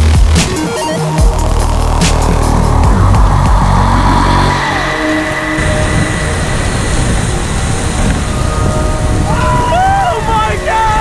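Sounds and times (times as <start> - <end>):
bass-heavy electronic music: 0.0 - 11.0
waterfall rushing: 1.3 - 11.0.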